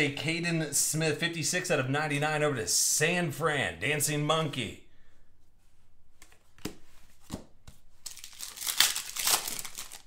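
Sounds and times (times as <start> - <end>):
wrapping crinkling: 7.9 - 10.0.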